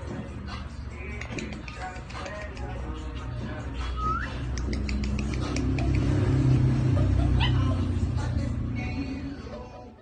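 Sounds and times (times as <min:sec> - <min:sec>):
dog whining: 0:07.4 - 0:07.8.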